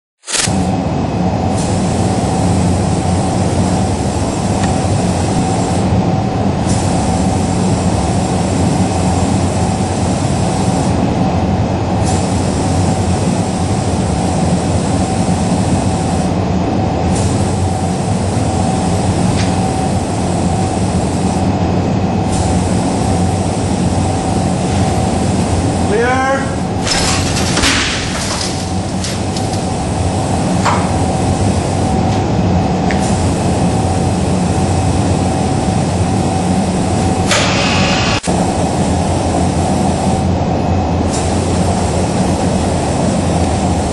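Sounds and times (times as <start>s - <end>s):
loud mechanical rumble: 0.2s - 43.9s
constant hum: 0.3s - 43.9s.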